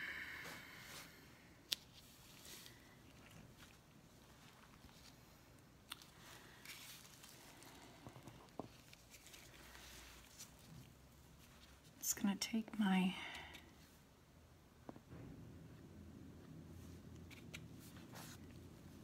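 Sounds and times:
soft handling noises: 0.4 - 14.2, 14.8 - 19.0.

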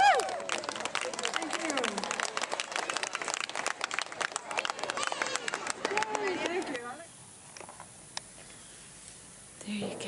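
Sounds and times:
audience applauding: 0.0 - 6.9.

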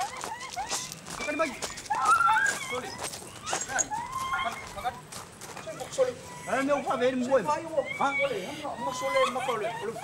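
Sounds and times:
high-pitched cries: 0.0 - 10.0.

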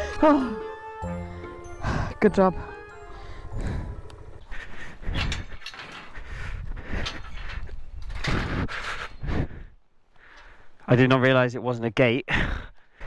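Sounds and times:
metal gate clanking and rattling: 5.0 - 9.3.

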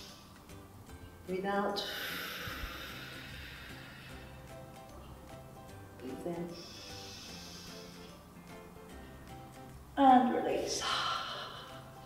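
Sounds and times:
quiet background music: 0.0 - 12.0
woman breathing out: 1.8 - 4.6, 6.6 - 8.2, 10.8 - 12.0.

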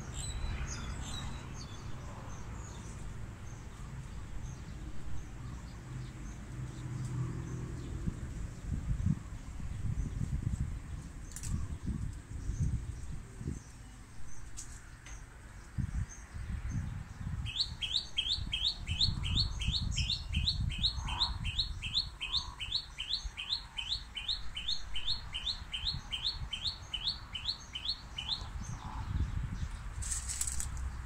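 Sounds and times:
bird singing rising notes: 17.3 - 28.9.

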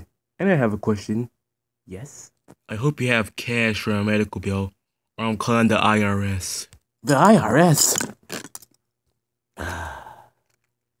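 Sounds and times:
person sighing: 9.5 - 10.5.

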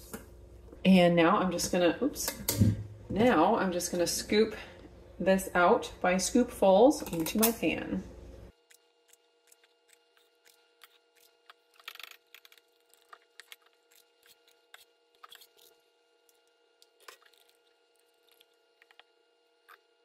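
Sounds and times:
scoop clicks and batter squishes: 8.6 - 19.9.

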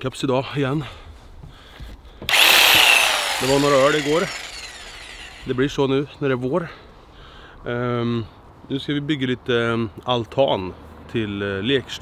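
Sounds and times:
angle grinder whining: 2.3 - 5.7.

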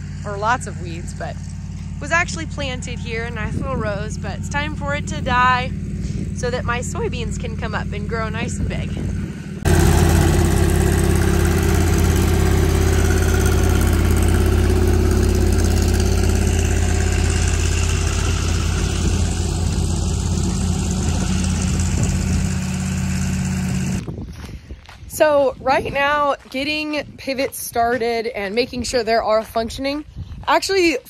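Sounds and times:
stationary engine running steadily: 0.0 - 25.0.

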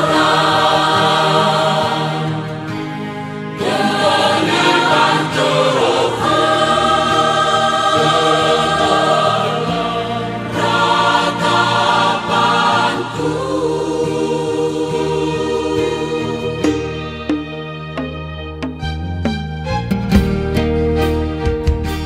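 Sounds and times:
worship song with sung vocals: 0.0 - 17.1.

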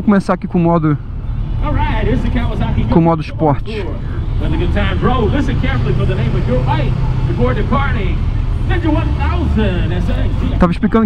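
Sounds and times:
man talking: 0.0 - 1.0, 1.6 - 11.0.

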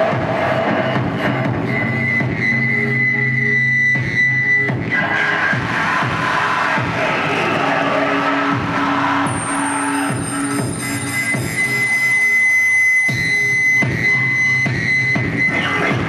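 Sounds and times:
distorted noise wash: 4.8 - 12.6
high feedback whine: 8.0 - 16.0.

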